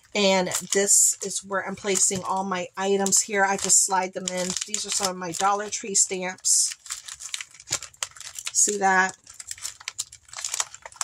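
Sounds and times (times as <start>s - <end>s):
plastic pages crinkling: 0.0s - 11.0s.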